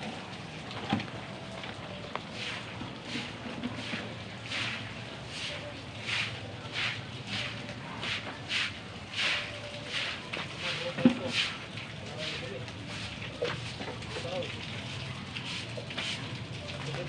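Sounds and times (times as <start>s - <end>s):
broom sweeping concrete floor: 2.3s - 11.6s, 12.2s - 13.8s, 14.9s - 16.3s.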